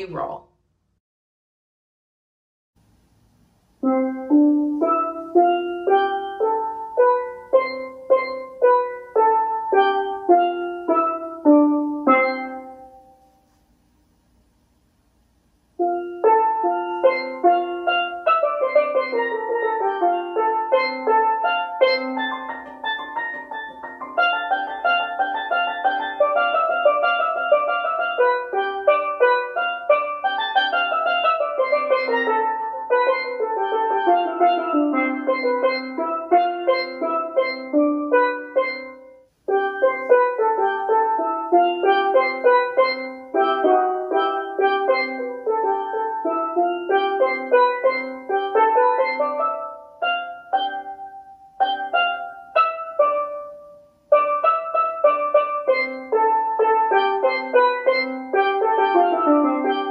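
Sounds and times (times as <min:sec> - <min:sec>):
steel pan melody: 0:03.8 - 0:13.6, 0:15.7 - 0:59.9.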